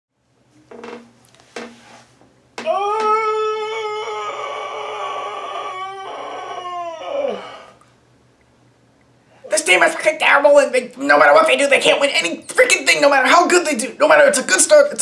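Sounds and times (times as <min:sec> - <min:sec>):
man howling: 0:02.6 - 0:07.8.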